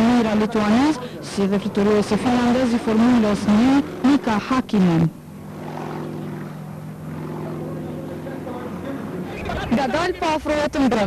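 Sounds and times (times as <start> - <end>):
propeller plane engine droning: 0.0 - 11.0.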